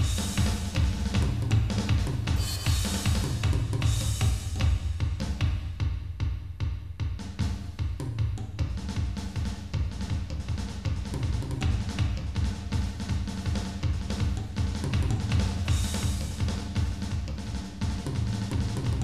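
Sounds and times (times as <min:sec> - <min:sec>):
drum kit playing: 0:00.0 - 0:19.0.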